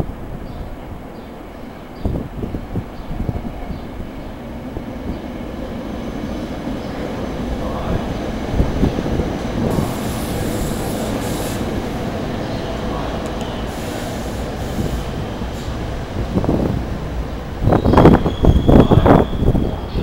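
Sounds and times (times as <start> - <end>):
train passing with steady rumble: 0.0 - 20.0
high hiss: 9.6 - 12.4, 13.4 - 16.4.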